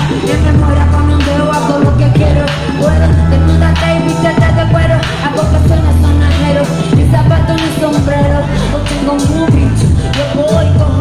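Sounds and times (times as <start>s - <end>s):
heavy bass beat: 0.0s - 11.0s
person rapping: 0.0s - 11.0s.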